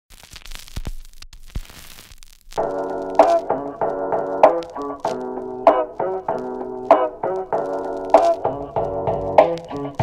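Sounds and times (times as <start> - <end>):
faint crackling hiss: 0.1 - 10.0
sharp clicks: 4.4 - 5.3.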